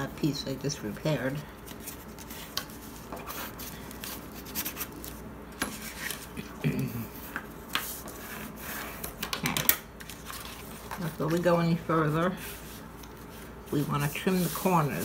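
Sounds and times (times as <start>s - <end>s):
bone folder scraping paper: 10.1s - 15.0s.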